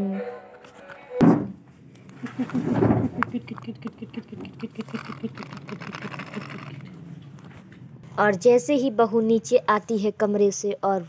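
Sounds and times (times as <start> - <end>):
clicks and rustles of paper: 4.8 - 7.8.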